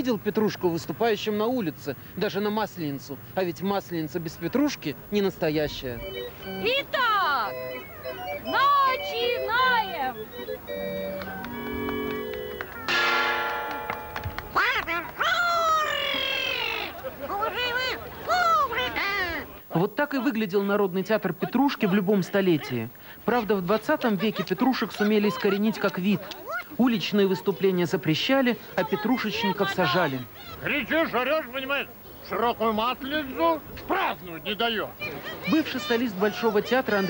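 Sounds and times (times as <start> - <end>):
shrill squawking puppet voice: 15.2 - 17.0.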